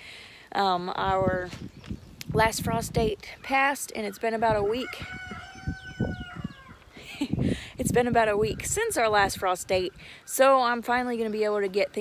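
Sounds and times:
rooster crowing: 4.8s - 6.8s.

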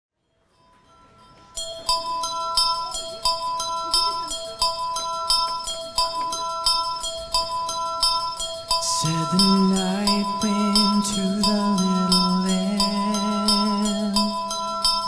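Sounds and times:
ringing bell-like music notes: 0.1s - 15.0s.

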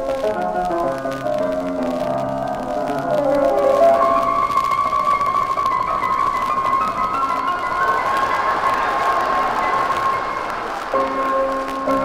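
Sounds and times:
hissing wash: 0.5s - 12.0s.

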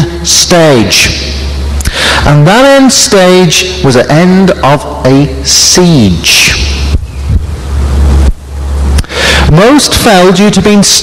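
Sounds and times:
loud low rumble: 6.1s - 10.1s.

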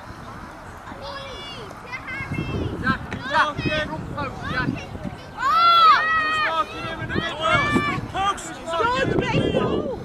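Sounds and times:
young children shouting: 0.9s - 10.0s.

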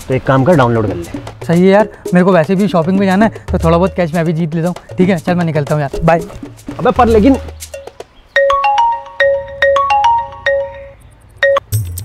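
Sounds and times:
phone ringing marimba ringtone: 7.1s - 11.8s.

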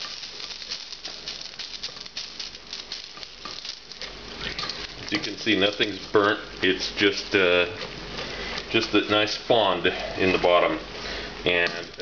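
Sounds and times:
stock sizzling in a hot pot: 0.0s - 12.0s.

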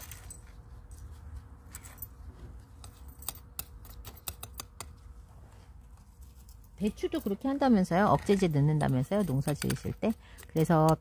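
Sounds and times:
metal spoon scraping potting mix: 6.9s - 11.0s.

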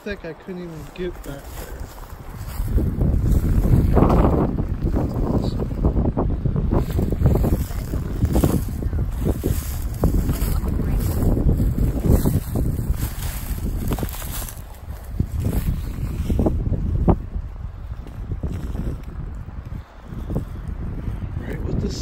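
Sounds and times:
wind buffeting microphone: 0.0s - 22.0s
footsteps crunching dry undergrowth: 0.4s - 21.4s.

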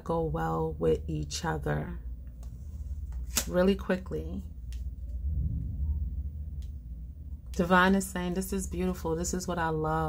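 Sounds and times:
low steady background rumble: 0.0s - 10.0s.

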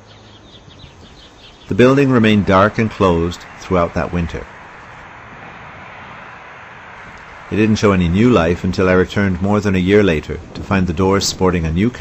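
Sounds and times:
distant urban rumble: 0.0s - 12.0s.

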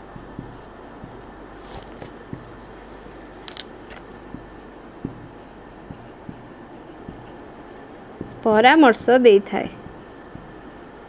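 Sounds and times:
low room hum: 0.0s - 11.0s
marker pen scratching on whiteboard: 0.0s - 11.0s.

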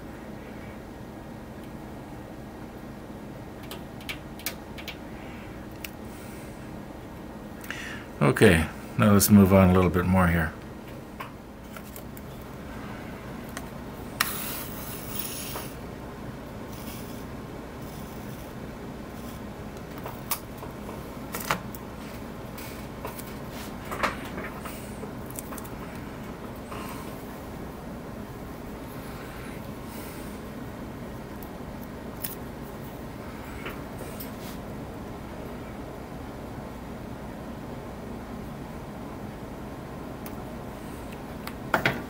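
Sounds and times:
steady low hum: 0.0s - 42.0s
tape rasp: 14.2s - 15.8s.

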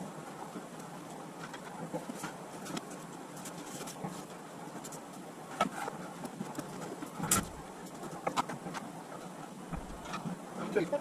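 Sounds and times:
scraping rustle: 1.3s - 11.0s.

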